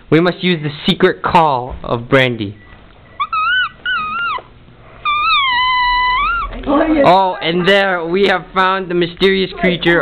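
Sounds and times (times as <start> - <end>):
high-pitched whining call: 3.0 - 6.7.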